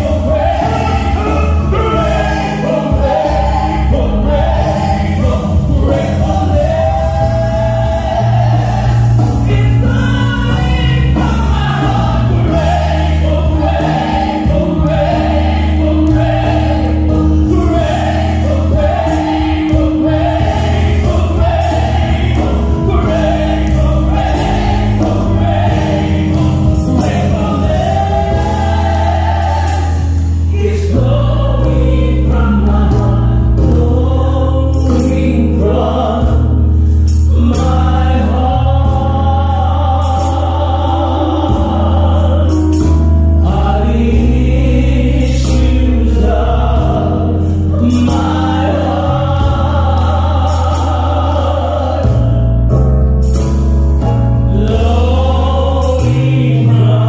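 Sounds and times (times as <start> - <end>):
choir singing gospel: 0.0 - 57.0
deep sustained bass: 0.0 - 57.0.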